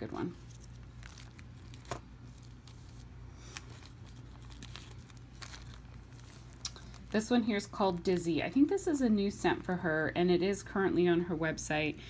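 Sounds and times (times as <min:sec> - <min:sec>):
plastic bags crinkling: 0:00.0 - 0:09.0
low steady hum: 0:00.0 - 0:12.0.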